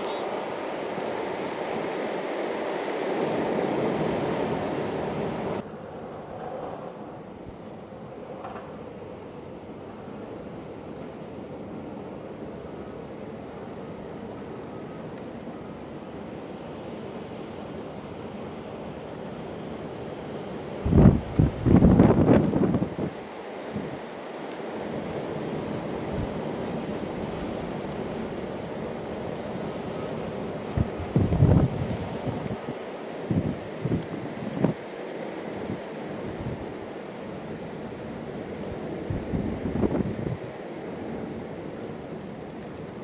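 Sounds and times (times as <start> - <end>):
wind blowing through snowstorm: 0.0 - 43.0
wind gusts buffeting microphone: 20.7 - 24.1, 24.8 - 34.9, 38.0 - 40.6.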